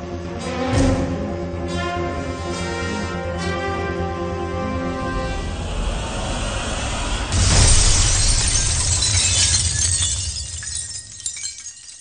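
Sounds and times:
low rumble: 4.6s - 11.8s
crash of shattering glass: 7.3s - 12.0s.

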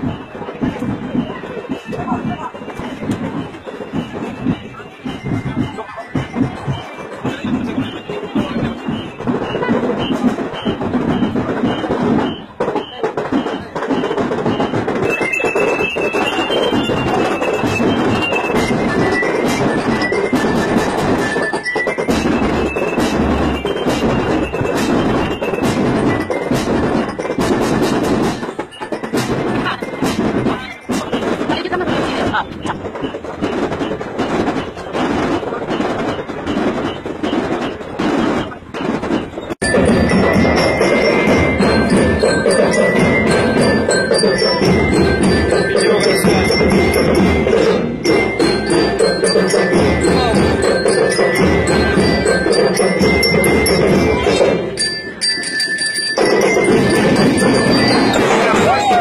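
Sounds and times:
crowd chatter: 0.0s - 59.0s
high stepping melody: 0.0s - 59.0s
marching drum band playing: 0.0s - 59.0s.

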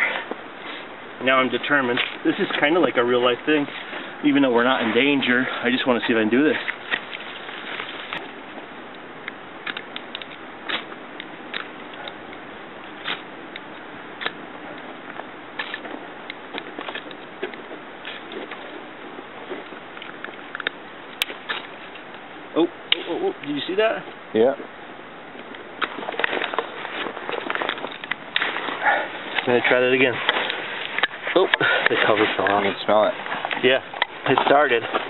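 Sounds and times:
striker scraping fire-starter rod: 0.0s - 8.3s, 9.6s - 22.2s, 25.4s - 35.0s.

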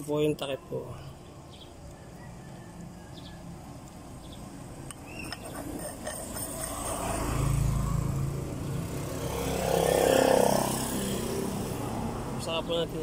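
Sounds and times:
vehicle engine passing by: 5.4s - 13.0s.

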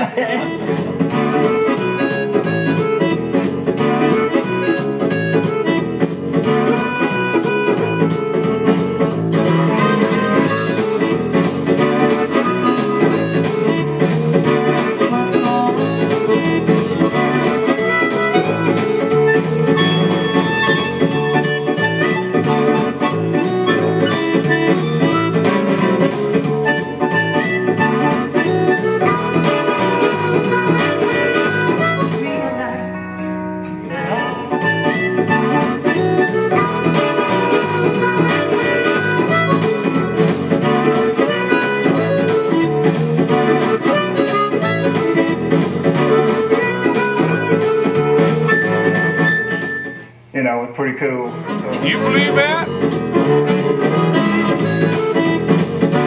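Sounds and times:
harmonica playing: 0.0s - 50.3s, 51.3s - 56.0s
guitar backing track: 0.0s - 56.0s.

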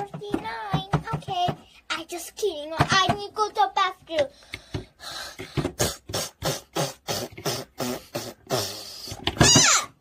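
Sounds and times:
person making puffs and grunts: 5.4s - 9.2s.

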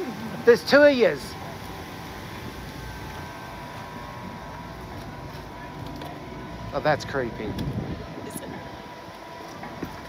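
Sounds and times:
faint steady tones: 0.0s - 10.0s
mechanical hum: 0.0s - 10.0s.

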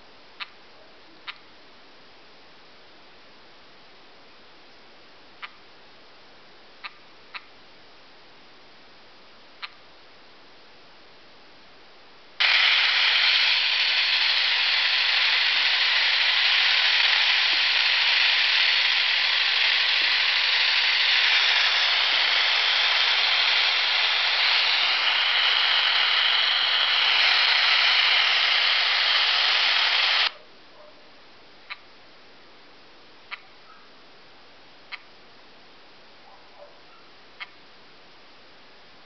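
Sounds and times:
tv static hiss: 12.0s - 30.4s.

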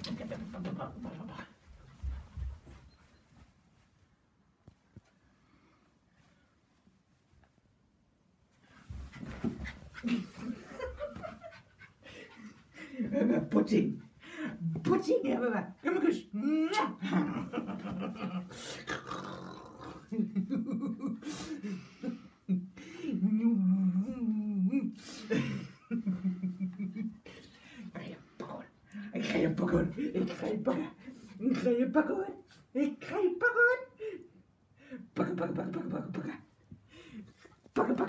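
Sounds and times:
dog excited breathing and vocalizing: 8.8s - 13.1s.

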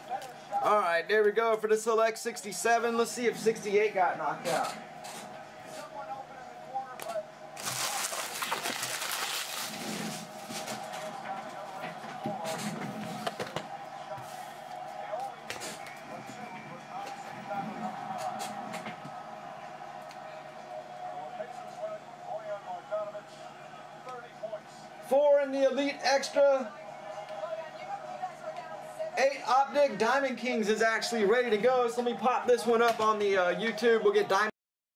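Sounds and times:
faint television broadcast voices: 0.0s - 34.5s.

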